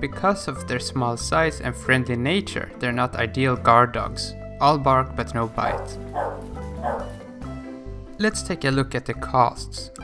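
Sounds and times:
acoustic guitar music: 5.2 - 7.9
puppy barking: 5.6 - 7.2.

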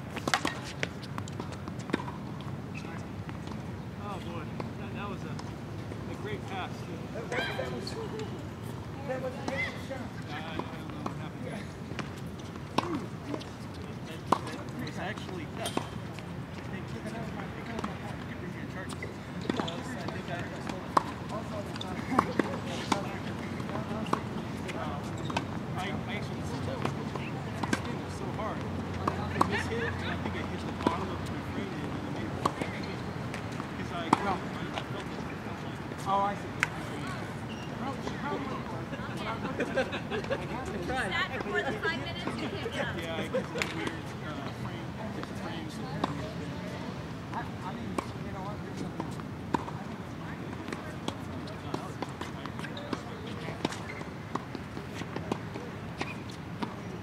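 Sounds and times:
tennis balls struck and bouncing: 0.1 - 2.6, 11.9 - 13.6, 14.3 - 16.2, 17.7 - 35.3, 43.3 - 44.6, 47.3 - 49.9, 50.6 - 56.8.

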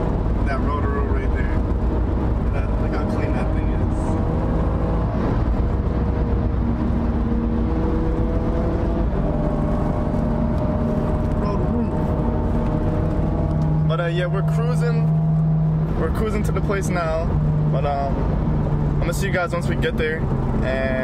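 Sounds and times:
car engine and road drone: 0.0 - 21.0.

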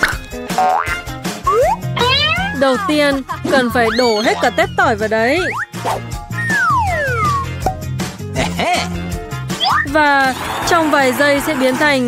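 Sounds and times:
background music with bass line: 0.0 - 10.2
rising cartoon sound effects: 1.5 - 2.6, 3.8 - 7.5.

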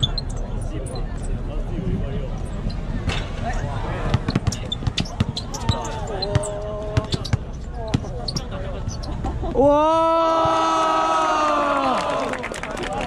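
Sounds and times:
voices of spectators: 0.0 - 13.0
basketball bouncing on concrete: 4.1 - 8.2.

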